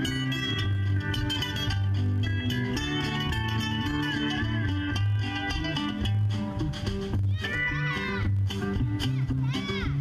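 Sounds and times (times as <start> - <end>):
acoustic guitar: 0.0 - 10.0
drum kit: 0.0 - 10.0
fiddle: 0.0 - 10.0
pedal steel guitar: 0.0 - 10.0
walking bass line: 0.0 - 10.0.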